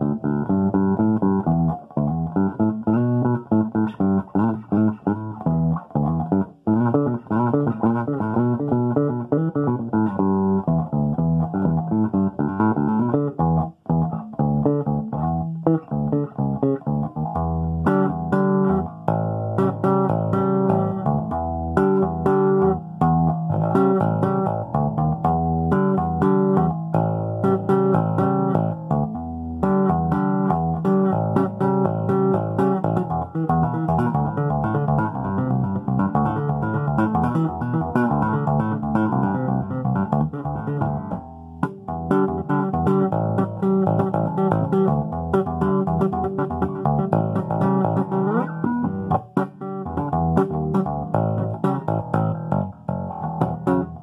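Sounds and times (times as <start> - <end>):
electric bass guitar: 0.0 - 54.0.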